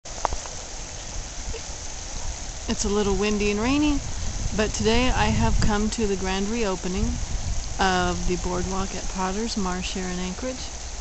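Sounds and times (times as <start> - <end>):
light rain hiss: 0.0 - 11.0
wind buffeting microphone: 0.1 - 11.0.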